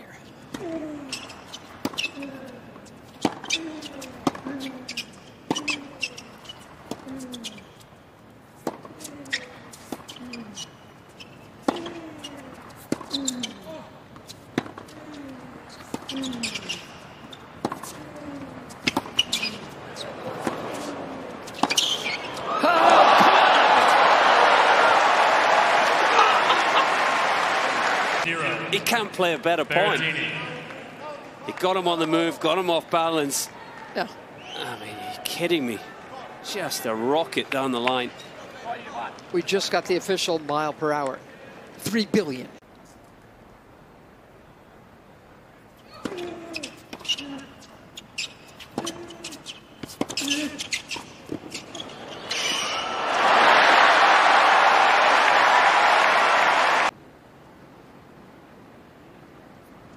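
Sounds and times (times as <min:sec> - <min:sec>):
crowd roar and applause: 0:22.4 - 0:28.3, 0:52.8 - 0:56.9.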